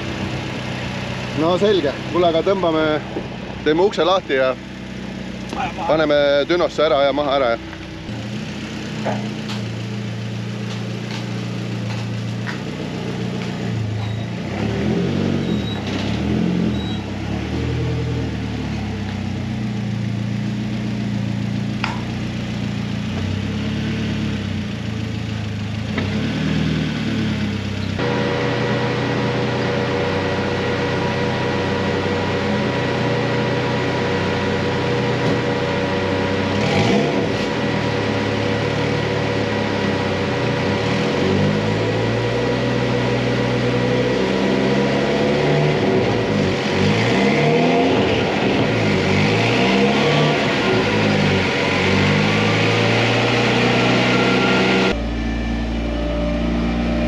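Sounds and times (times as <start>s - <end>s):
race car engine running: 0.0s - 57.0s
steady high whine: 48.0s - 57.0s.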